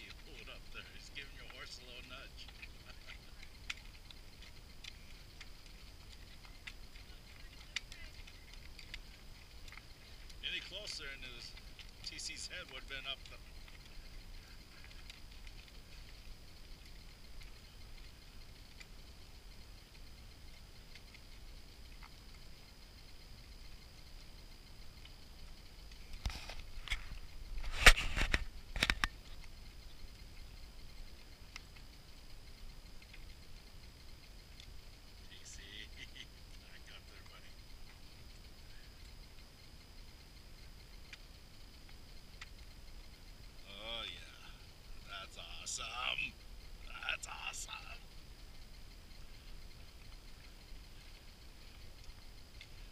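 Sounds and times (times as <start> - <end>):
faint steady high tone: 29.0 - 52.9.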